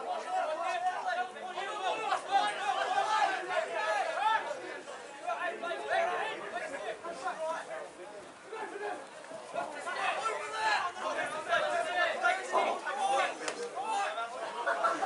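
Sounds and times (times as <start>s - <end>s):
voices shouting over one another: 0.0s - 15.0s.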